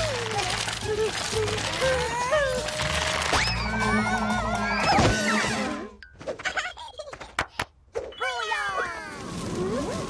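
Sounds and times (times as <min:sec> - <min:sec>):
cartoon character crying out: 0:00.0 - 0:05.8.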